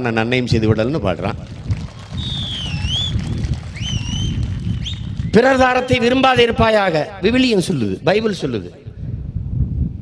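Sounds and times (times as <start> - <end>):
audience whistling: 2.1 - 5.4.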